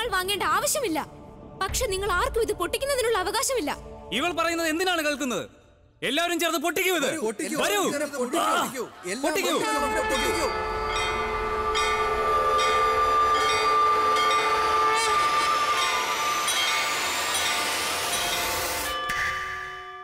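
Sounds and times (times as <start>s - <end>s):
loud held chord: 9.6s - 19.7s.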